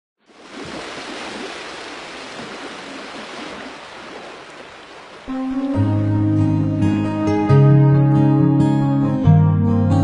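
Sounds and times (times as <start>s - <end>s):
sea surf washing on shore: 0.3s - 6.0s.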